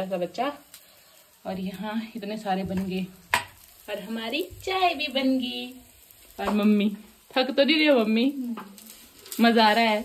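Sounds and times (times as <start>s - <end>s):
woman talking: 0.0s - 0.6s, 1.4s - 3.2s, 3.9s - 5.8s, 6.4s - 8.7s, 9.4s - 10.0s
food sizzling in oil: 0.0s - 10.0s.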